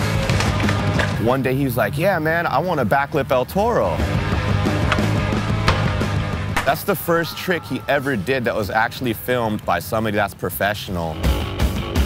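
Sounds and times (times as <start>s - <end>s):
background music with bass line: 3.7s - 8.5s, 11.1s - 12.0s
sharp knocks: 4.9s - 6.9s.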